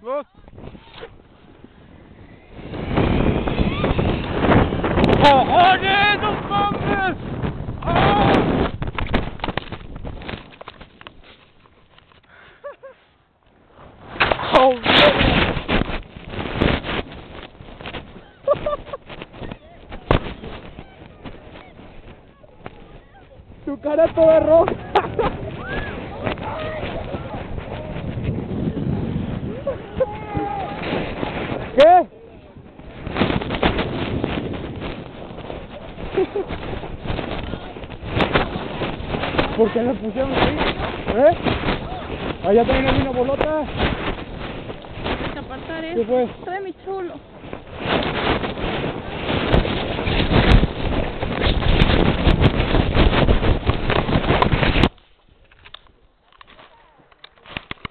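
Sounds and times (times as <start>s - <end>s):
microphone handling noise: 0.0s - 57.9s
wind noise: 0.0s - 57.9s.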